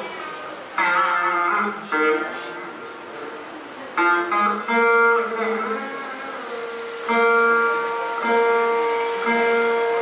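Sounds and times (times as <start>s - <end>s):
veena note bending: 0.3s - 3.2s, 3.8s - 10.0s.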